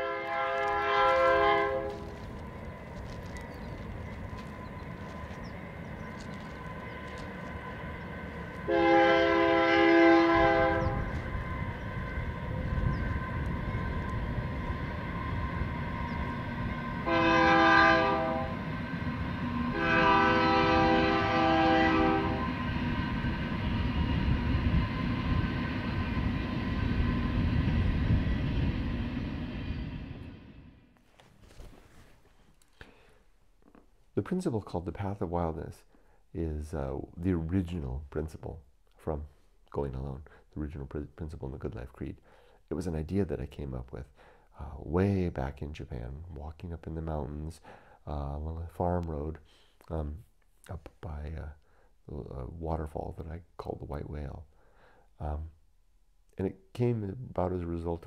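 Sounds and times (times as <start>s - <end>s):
train horn blasts: 0.0s - 2.3s, 8.6s - 26.5s
passing train rumble: 0.0s - 31.0s.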